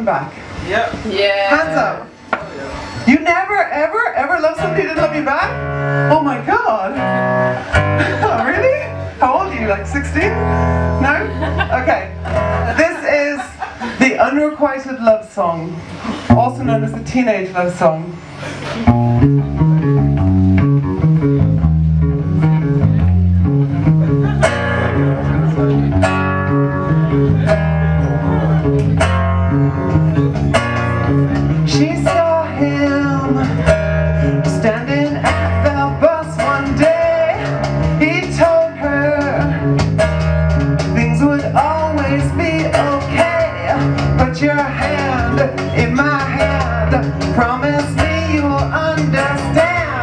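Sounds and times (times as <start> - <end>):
rock band playing: 2.1 - 14.3, 18.1 - 50.0
woman singing: 42.6 - 50.0.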